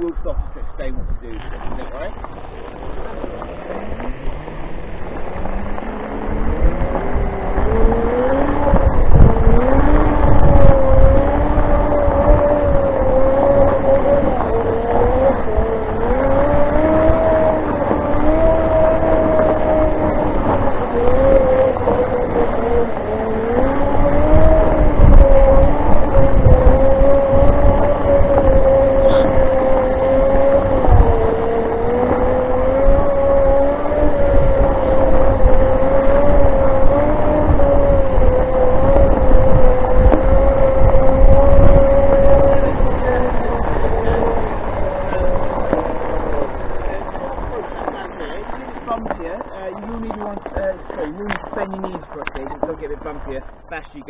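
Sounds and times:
electric drive whining: 0.0 - 54.0
low rumble: 0.0 - 54.0.

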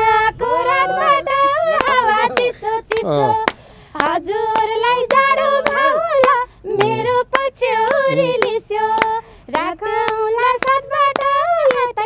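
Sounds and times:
hand claps: 1.7 - 11.9.

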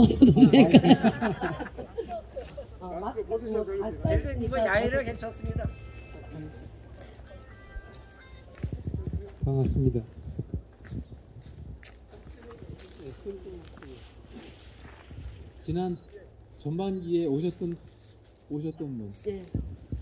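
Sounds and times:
scattered voices: 1.8 - 10.7
faint music: 2.0 - 20.0.

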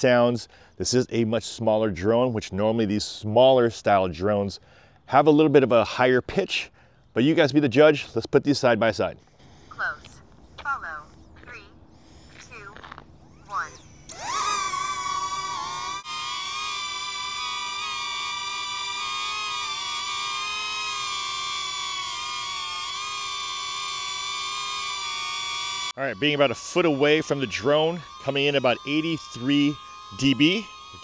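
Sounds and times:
drone propellers whining: 11.5 - 31.0.

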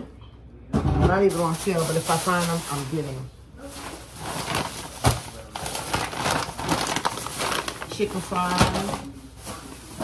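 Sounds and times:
plastic bags rustling: 1.1 - 10.0.

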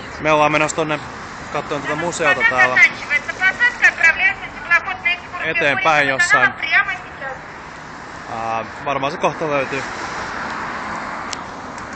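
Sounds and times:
light traffic: 0.0 - 11.9
person speaking: 1.6 - 7.4.

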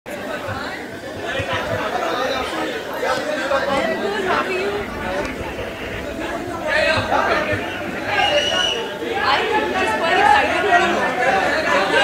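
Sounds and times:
people chattering: 0.1 - 12.0.

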